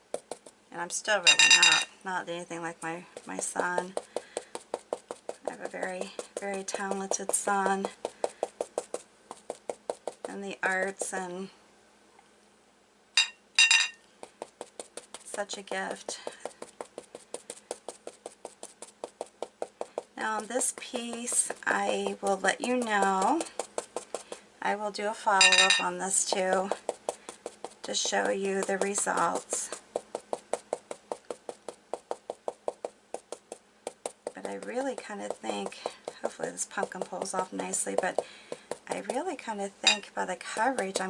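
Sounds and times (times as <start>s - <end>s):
stencil brush dabbing on fabric: 0.0s - 0.7s, 2.7s - 11.5s, 14.1s - 24.6s, 25.4s - 41.0s
short ringing clinks: 1.3s - 1.9s, 13.2s - 14.0s, 25.4s - 25.8s.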